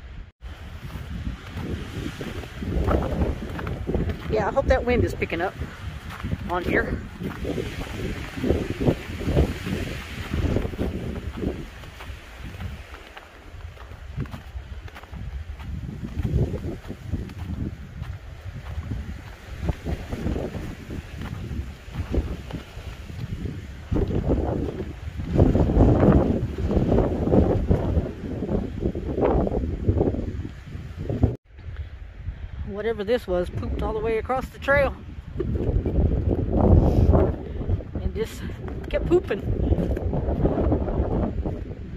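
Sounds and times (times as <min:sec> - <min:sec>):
wind gusting across microphone: 0:00.0 - 0:41.9.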